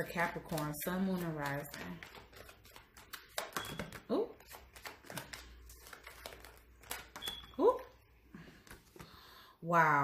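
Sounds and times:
cards being shuffled by hand: 0.0s - 7.6s, 8.4s - 9.2s.

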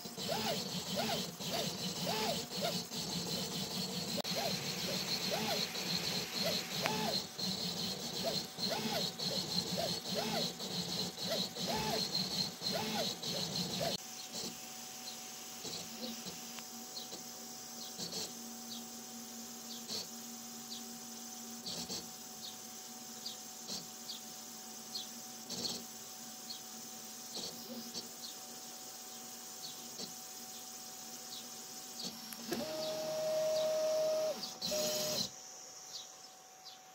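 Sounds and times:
printer steady hum: 0.0s - 14.5s, 32.0s - 35.3s
stepper motors whining: 0.0s - 14.6s, 32.0s - 35.3s
loud steady stepper tone: 0.2s - 13.9s.

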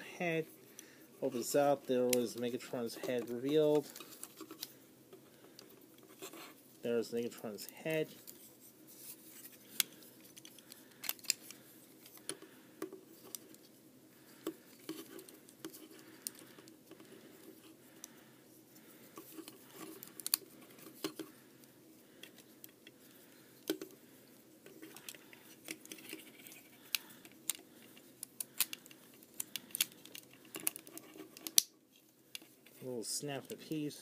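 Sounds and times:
plastic toy parts clicking: 28.5s - 31.7s.

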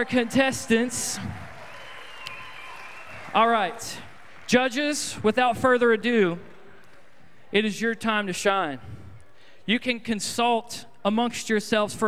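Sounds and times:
audience applause: 0.0s - 5.1s.

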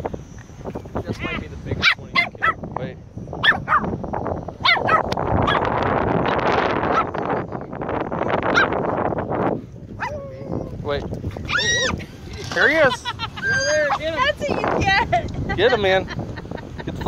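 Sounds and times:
small dog yelping: 3.4s - 3.9s, 4.6s - 5.7s, 6.9s - 7.2s, 8.5s - 8.8s, 10.0s - 10.3s
dog whining yelps: 4.6s - 5.6s, 13.4s - 14.0s.

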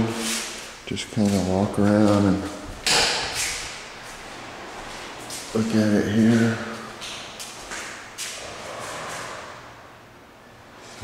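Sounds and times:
sliding door rushing in track: 8.4s - 9.8s.

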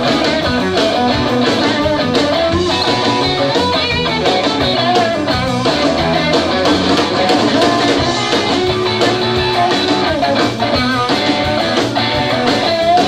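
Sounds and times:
bass and drums: 0.0s - 13.0s
electric guitar: 0.0s - 13.0s.

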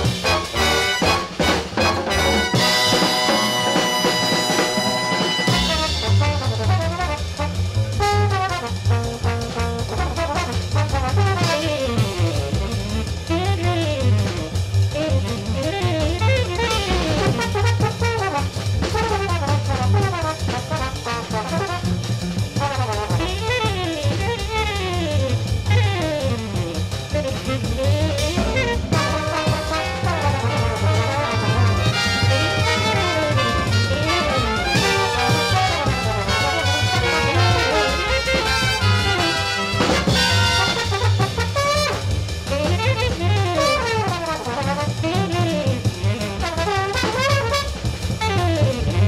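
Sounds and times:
fast horn lines: 0.0s - 7.4s, 27.2s - 45.6s, 46.2s - 48.6s
held brass chord: 0.0s - 8.8s, 28.2s - 42.1s
bass: 0.0s - 49.0s
drum kit: 0.0s - 49.0s.

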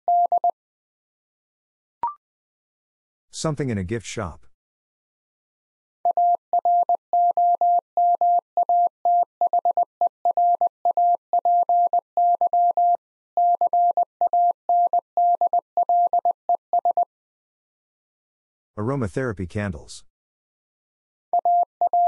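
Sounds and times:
morse code tone: 21.4s - 22.0s.

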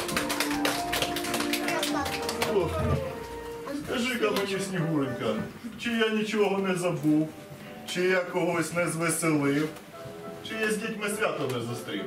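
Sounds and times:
people clapping: 0.0s - 3.4s, 4.3s - 4.6s.

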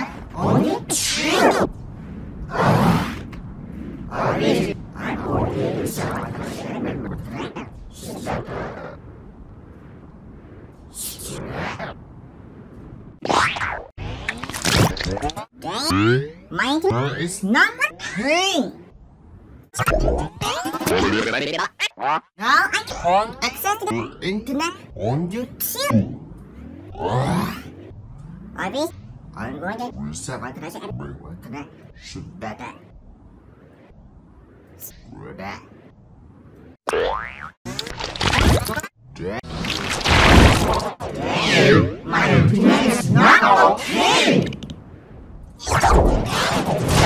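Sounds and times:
noisy swooshes: 0.0s - 14.3s, 22.9s - 36.8s
wobbly pitch glide: 0.0s - 38.7s
garbled warped sound: 19.8s - 24.9s, 25.5s - 29.9s
rising and falling pitch swoops: 24.0s - 30.6s.

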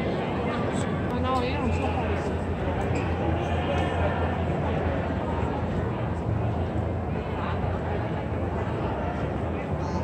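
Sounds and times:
distant crowd voices: 0.0s - 10.0s.

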